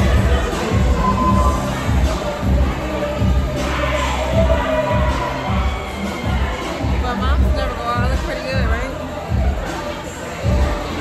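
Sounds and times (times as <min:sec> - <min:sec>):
crowd voices: 0:00.0 - 0:11.0
loud club music with heavy bass: 0:00.0 - 0:11.0.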